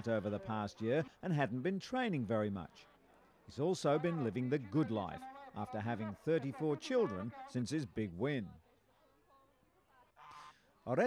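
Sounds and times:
goose honking: 10.2 - 10.6.

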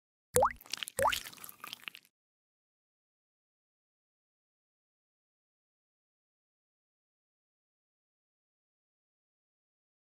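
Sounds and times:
rising liquid plops: 0.4 - 2.1.

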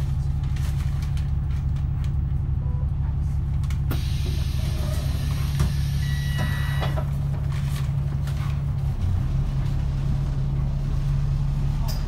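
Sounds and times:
bus diesel engine idling: 0.0 - 12.0.

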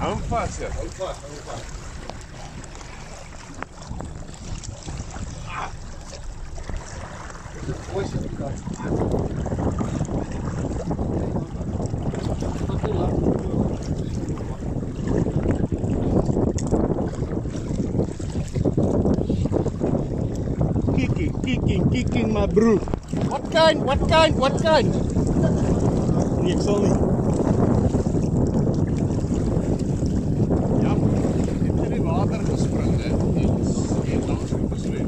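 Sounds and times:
rushing water: 0.0 - 35.0
wind buffeting microphone: 0.0 - 35.0.

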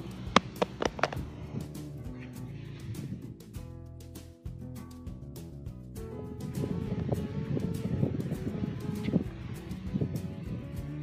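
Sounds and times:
background music: 0.0 - 11.0
phone clattering on concrete: 0.4 - 1.2.

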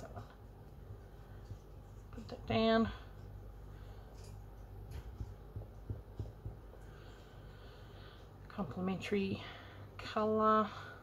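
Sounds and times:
steady low hum: 0.0 - 11.0
hands tapping on tabletop: 4.8 - 6.8.

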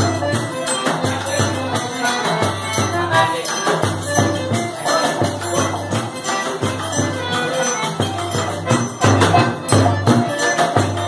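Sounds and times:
accordion playing: 0.0 - 11.0
tambourine jingling: 0.0 - 11.0.

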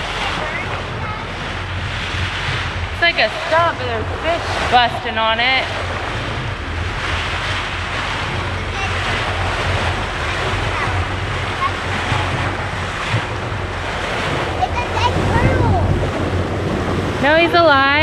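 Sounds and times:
faint voices: 0.0 - 1.8, 8.2 - 16.4
boat engine hum: 0.0 - 18.0
water rushing along boat hull: 0.0 - 18.0
wind on microphone: 0.0 - 18.0.

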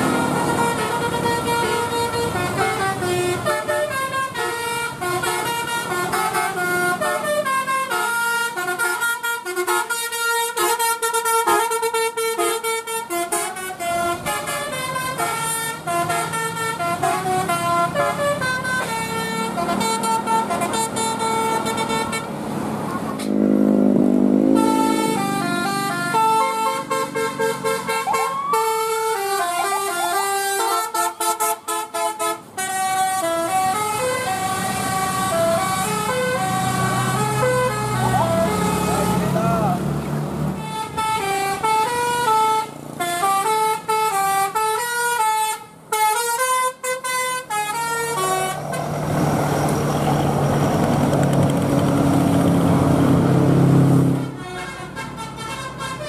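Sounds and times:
multi-tone bus horns playing tunes: 0.0 - 50.6, 52.6 - 56.0
loud low horn blast: 23.2 - 50.6, 52.6 - 56.0.

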